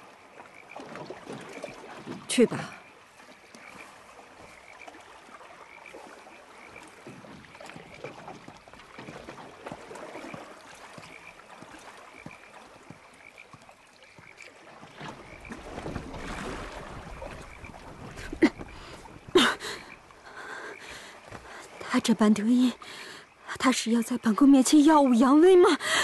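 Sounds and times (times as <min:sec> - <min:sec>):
frogs chirping: 0:00.0 - 0:26.0.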